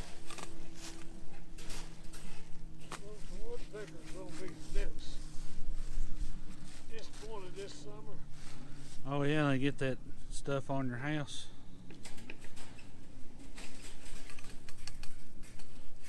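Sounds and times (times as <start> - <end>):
wire clicking and scraping: 0.0 - 3.2, 11.9 - 16.0
steady low hum: 0.0 - 16.0.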